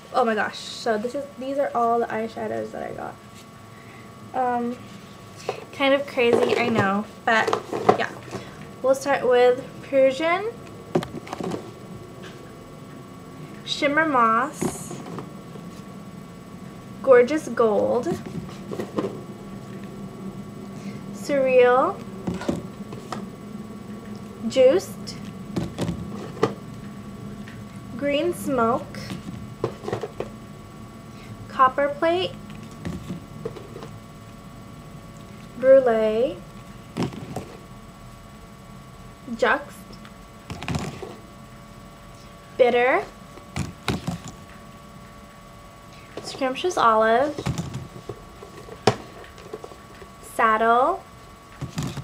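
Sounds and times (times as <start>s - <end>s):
electrical hum: 0.0s - 52.0s.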